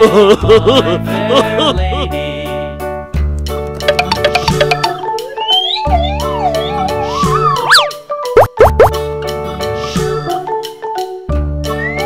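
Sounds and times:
children's background music: 0:03.8 - 0:12.0
boing-like glides: 0:03.9 - 0:05.0, 0:07.7 - 0:09.0.

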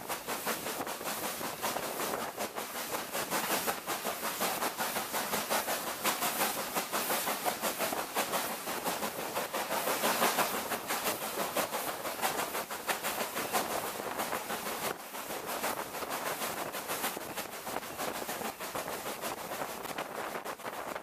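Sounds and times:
train wheel and wind noise: 0:00.0 - 0:21.0.

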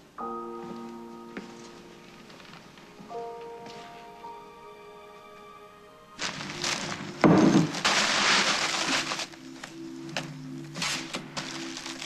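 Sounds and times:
wrapping paper crinkling: 0:06.2 - 0:12.0.

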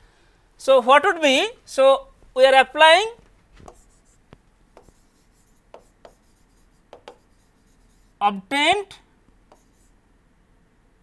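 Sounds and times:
stylus tapping on tablet: 0:03.6 - 0:07.5, 0:09.5 - 0:09.8.

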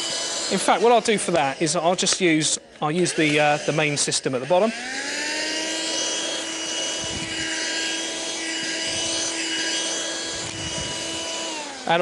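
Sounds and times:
handheld vacuum cleaner running: 0:00.0 - 0:12.0.

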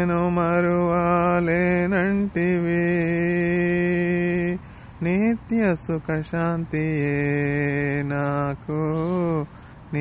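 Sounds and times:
man singing unaccompanied: 0:00.0 - 0:10.0
quick breath: 0:04.6 - 0:05.0, 0:09.5 - 0:09.9.

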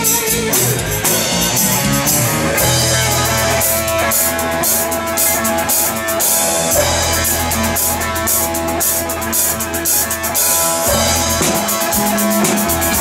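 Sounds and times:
electric guitar lead notes: 0:00.0 - 0:13.0
live rock band playing: 0:00.0 - 0:13.0.

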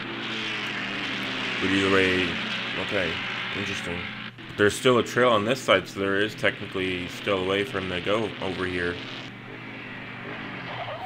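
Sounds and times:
dirt bike engines running: 0:00.0 - 0:11.0.

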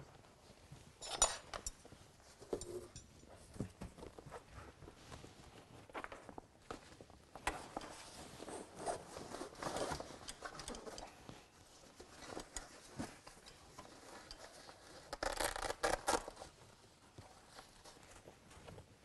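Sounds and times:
velcro straps ripping: 0:15.0 - 0:16.5.

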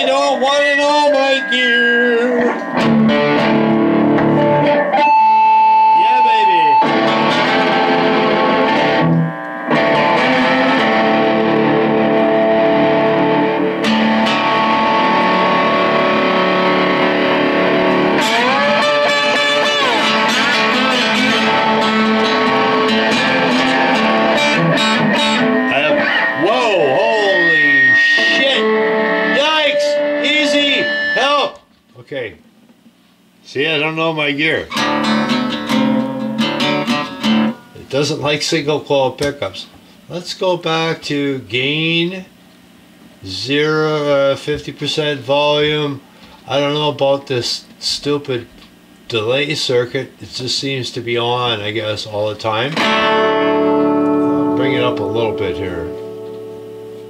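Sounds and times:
distorted electric guitar with delay: 0:00.0 - 0:31.7, 0:34.6 - 0:38.2, 0:52.7 - 0:57.0.

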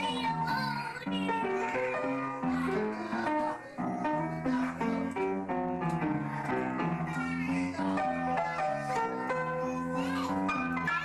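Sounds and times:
upright piano playing: 0:00.0 - 0:11.0.

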